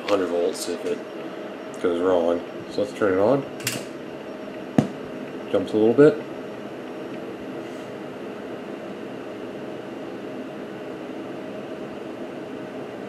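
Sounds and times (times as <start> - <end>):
equipment low hum: 0.0 - 13.0.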